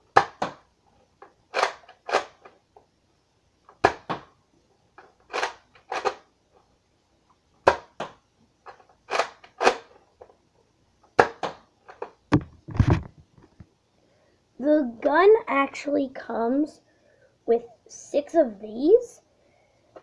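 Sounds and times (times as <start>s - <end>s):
toy dart blaster clacks: 9.1s - 9.9s.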